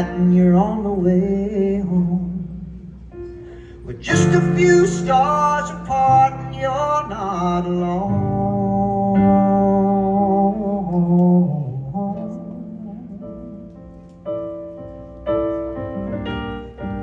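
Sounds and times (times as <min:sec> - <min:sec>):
piano chords: 0:00.0 - 0:17.0.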